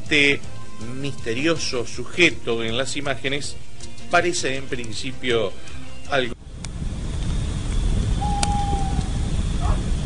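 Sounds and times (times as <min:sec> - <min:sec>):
loud deep rumble: 0:06.4 - 0:10.0
click: 0:08.4 - 0:09.1.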